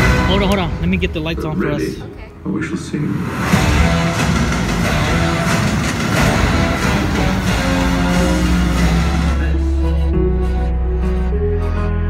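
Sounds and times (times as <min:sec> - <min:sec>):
loud dense music: 0:00.0 - 0:02.1, 0:03.1 - 0:12.0.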